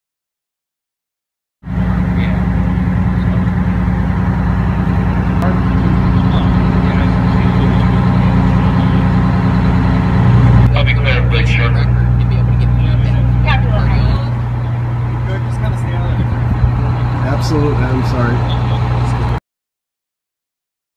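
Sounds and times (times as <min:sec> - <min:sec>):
large vehicle engine idling: 0:01.7 - 0:19.4
people talking in background: 0:10.7 - 0:14.4.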